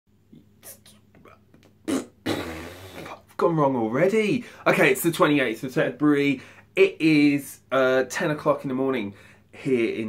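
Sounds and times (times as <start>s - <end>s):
man whispering: 0.4s - 1.5s
raspberry breath burst: 1.9s - 3.2s.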